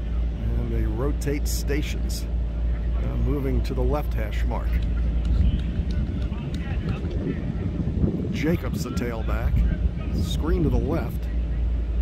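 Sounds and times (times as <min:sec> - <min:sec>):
faint distant voices: 0:00.0 - 0:12.0
wind rumbling on microphone: 0:04.4 - 0:12.0.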